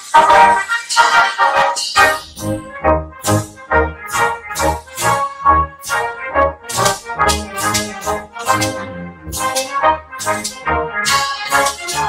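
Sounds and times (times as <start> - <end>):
snare drum strokes: 0.0 - 12.0
trumpets playing march melody: 0.0 - 12.0.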